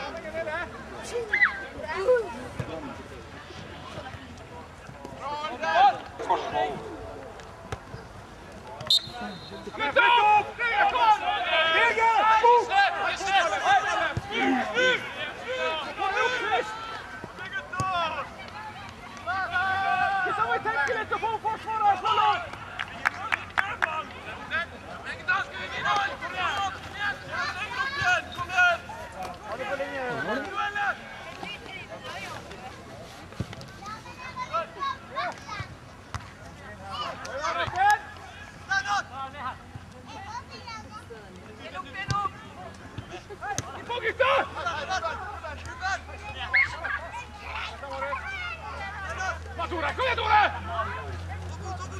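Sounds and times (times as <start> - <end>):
people talking and calling out: 0.0 - 51.9
players shouting: 8.7 - 32.7, 36.7 - 39.6, 41.6 - 51.9.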